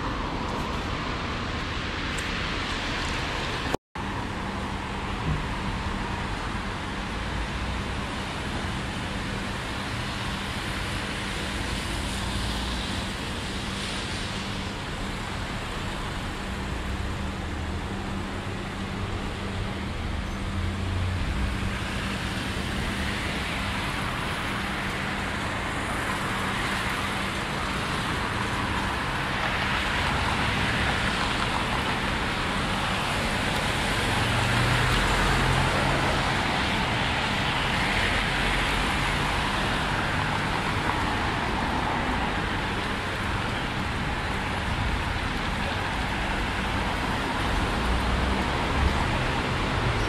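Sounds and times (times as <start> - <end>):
cars passing: 10.0 - 50.0.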